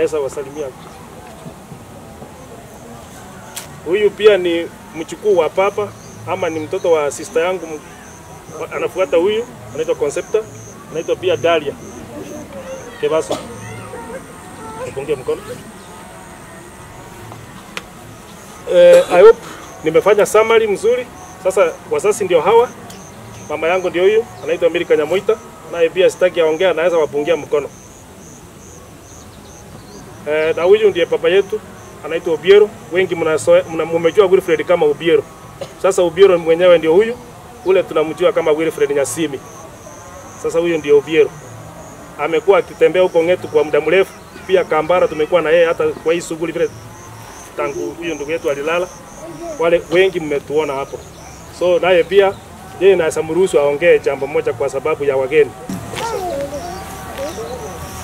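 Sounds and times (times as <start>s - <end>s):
faint high insect chirping: 0.0s - 58.0s
man speaking: 14.8s - 15.6s, 47.6s - 51.0s.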